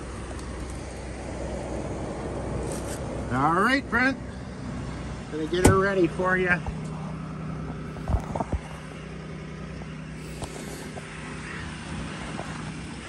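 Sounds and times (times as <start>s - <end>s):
vehicle engine idling: 0.0s - 13.0s.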